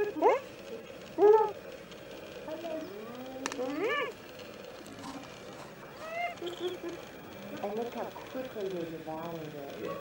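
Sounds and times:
hyenas giggling and squealing: 6.0s - 7.0s.

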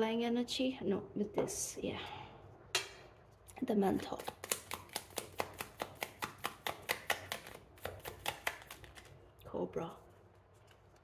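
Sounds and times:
cards being shuffled: 3.9s - 9.2s.

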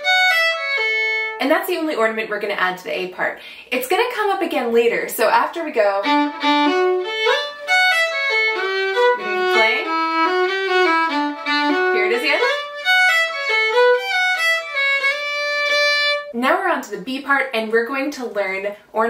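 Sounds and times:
solo fiddle playing lively tune: 0.0s - 1.4s, 5.5s - 16.3s.

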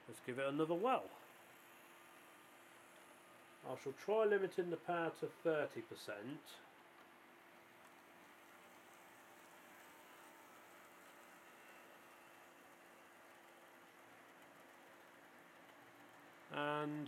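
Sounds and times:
low hiss: 0.0s - 17.0s
model trains humming: 0.0s - 17.0s.

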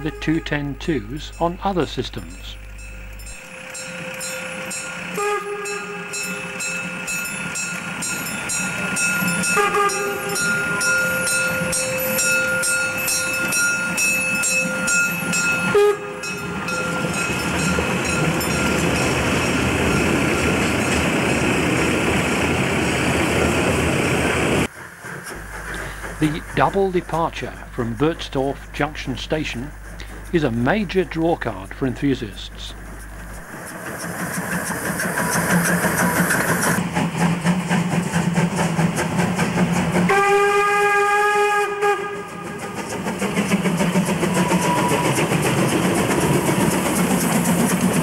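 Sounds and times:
steam locomotive whistle blasts: 0.0s - 0.8s, 5.0s - 6.7s, 9.3s - 13.7s, 15.6s - 16.8s, 40.1s - 42.9s, 44.3s - 45.2s
steam locomotive exhaust beat: 0.0s - 48.0s
rush of exhaust and steam: 17.6s - 30.8s, 33.4s - 48.0s.

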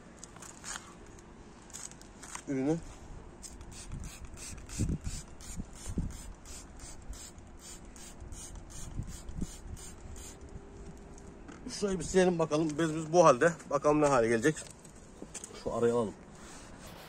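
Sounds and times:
spray bottle hissing puffs: 3.4s - 10.4s.

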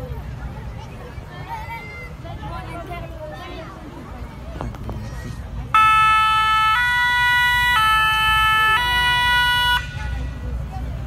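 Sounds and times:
fire engine two-tone siren: 5.7s - 10.2s.

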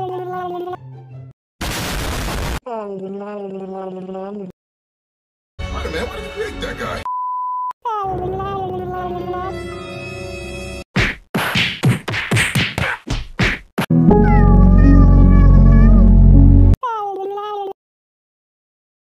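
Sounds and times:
held chord: 13.9s - 16.8s.

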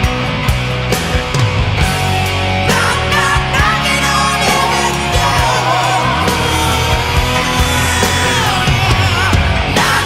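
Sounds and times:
gliding lead guitar line: 0.0s - 10.0s
rock music: 0.0s - 10.0s.

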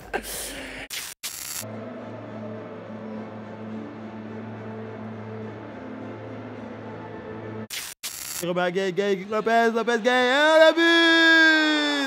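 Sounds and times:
ambient music drone: 1.6s - 7.7s
burst of static noise: 7.7s - 8.4s.

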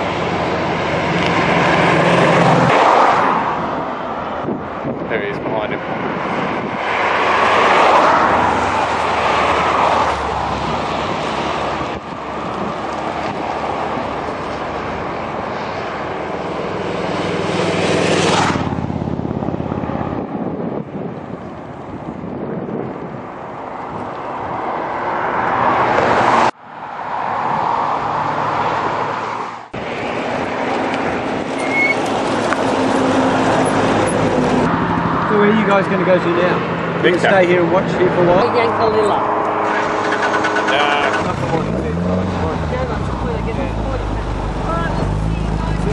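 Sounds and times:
cars passing at speed: 0.0s - 45.9s.

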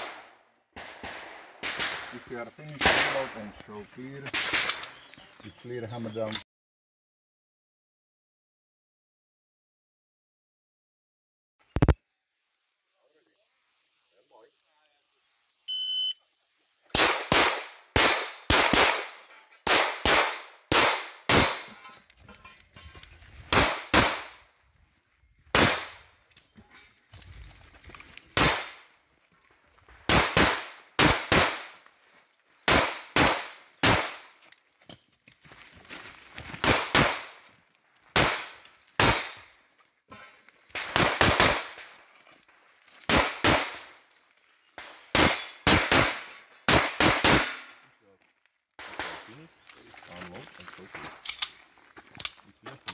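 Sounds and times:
pistol shots: 0.0s - 3.5s, 4.3s - 5.0s, 17.0s - 21.8s, 23.5s - 24.4s, 25.5s - 26.0s, 28.4s - 28.8s, 30.1s - 31.8s, 32.7s - 34.4s, 36.6s - 37.4s, 38.2s - 39.4s, 40.8s - 41.9s, 43.1s - 43.9s, 44.8s - 47.8s.

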